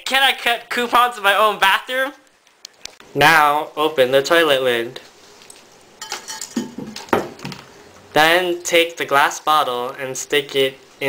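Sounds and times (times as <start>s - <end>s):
ceramic lid clinking and scraping: 6.0s - 6.8s.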